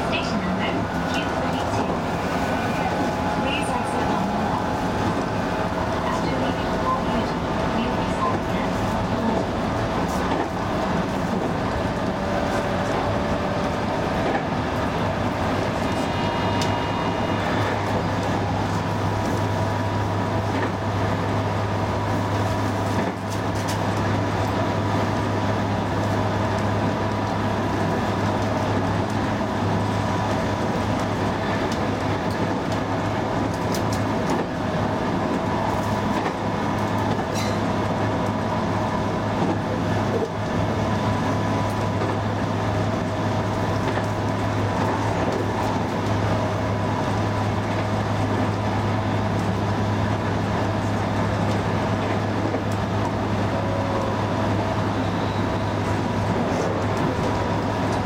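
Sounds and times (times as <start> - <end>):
train equipment humming: 0.0 - 58.0.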